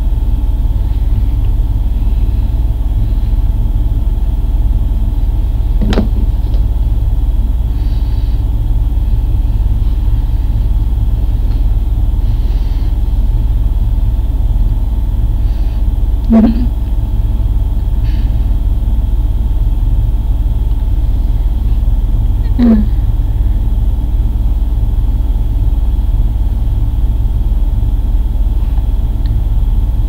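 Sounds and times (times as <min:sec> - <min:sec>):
faint hum tones: 0:00.0 - 0:30.0
loud steady low rumble: 0:00.0 - 0:30.0.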